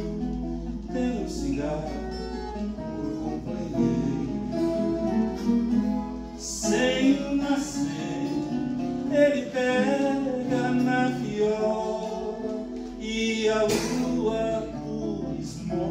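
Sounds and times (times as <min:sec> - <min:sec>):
acoustic guitar: 0:00.0 - 0:15.9.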